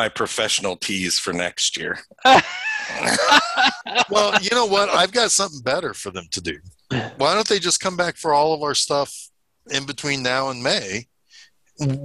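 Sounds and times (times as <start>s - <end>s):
men laughing: 2.2s - 5.5s.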